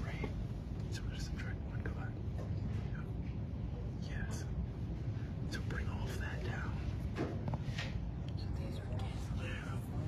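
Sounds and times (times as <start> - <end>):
man whispering: 0.0 - 7.2, 8.2 - 10.0
steady low rumble: 0.0 - 10.0.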